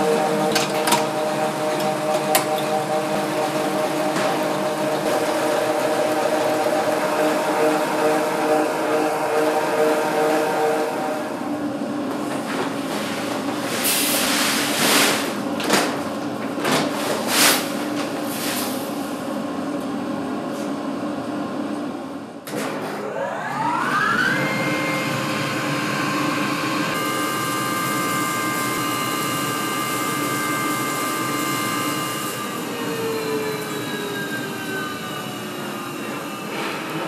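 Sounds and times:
rice mill machine whine: 0.0 - 11.7, 23.0 - 37.0.

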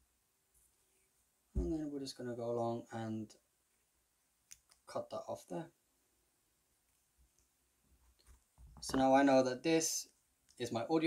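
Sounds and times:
man speaking: 1.6 - 3.4, 4.9 - 5.8, 8.8 - 11.0.

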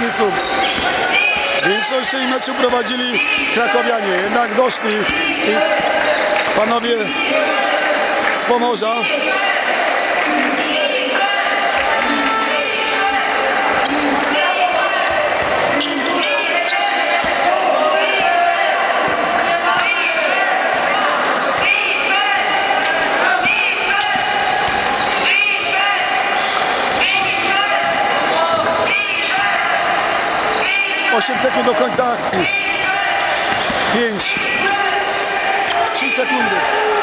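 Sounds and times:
shoes squeaking: 0.0 - 8.5, 13.6 - 20.1, 28.5 - 37.0
voices in a hall: 0.0 - 37.0
basketball bouncing: 5.0 - 6.6, 31.8 - 34.7.

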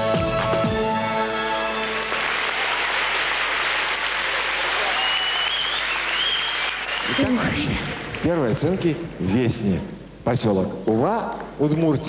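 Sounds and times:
audience applauding: 1.2 - 9.3.

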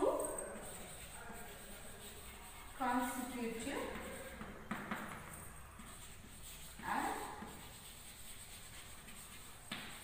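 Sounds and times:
chalk scratching on a chalkboard: 0.0 - 10.0.

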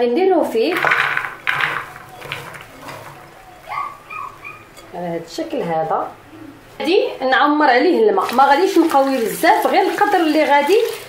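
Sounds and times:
pieces landing in metal pot: 0.7 - 3.7.

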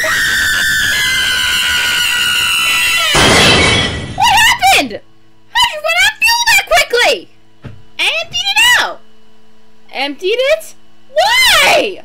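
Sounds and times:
high-pitched screaming: 0.0 - 4.2.

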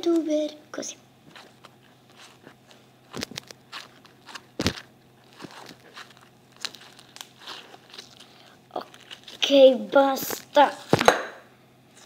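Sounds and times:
slime crackling and snapping: 1.4 - 9.6.

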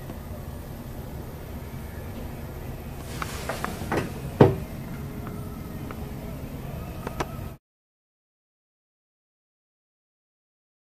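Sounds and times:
low background hum: 0.0 - 7.6.

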